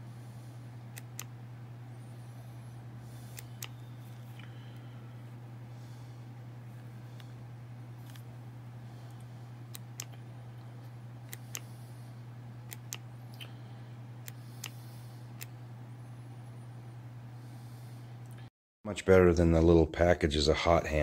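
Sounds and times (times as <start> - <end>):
steady low hum: 0.0 - 21.0
thermometer clicks: 0.9 - 1.3, 3.3 - 4.5, 9.7 - 10.2, 11.3 - 11.7, 12.7 - 13.5.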